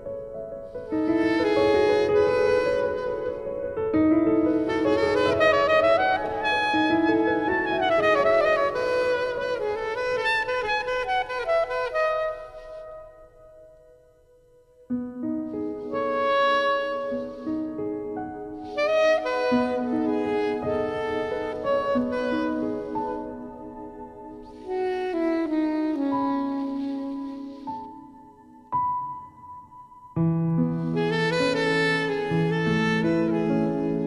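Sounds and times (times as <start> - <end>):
soft sustained backing: 0.0 - 34.0
slow saxophone melody: 0.6 - 29.5, 30.4 - 34.0.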